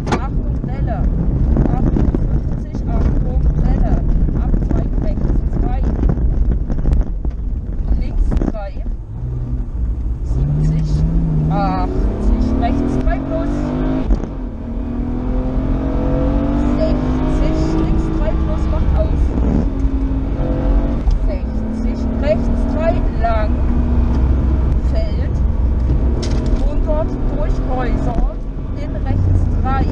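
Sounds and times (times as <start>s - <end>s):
rally car engine revving: 0.0s - 29.9s
road and wind noise: 0.0s - 29.9s.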